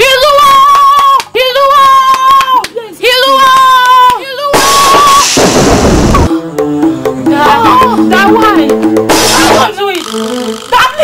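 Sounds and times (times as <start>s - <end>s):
blast with deep rumble: 4.8s - 6.3s.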